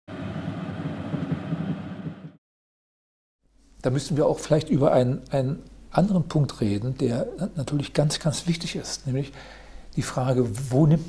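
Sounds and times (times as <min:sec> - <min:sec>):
train rumble: 0:00.1 - 0:02.4.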